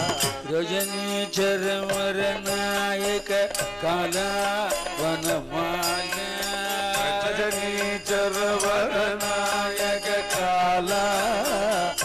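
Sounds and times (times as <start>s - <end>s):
harmonium drone: 0.0s - 12.0s
men singing devotional song: 0.0s - 12.0s
percussion strikes: 0.0s - 12.0s.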